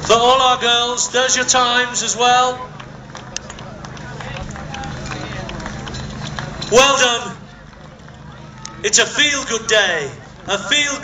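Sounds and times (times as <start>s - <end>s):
crowd chatter: 0.0s - 11.0s
steady low hum: 0.0s - 11.0s
sharp taps and claps: 2.8s - 6.8s, 7.6s - 8.8s.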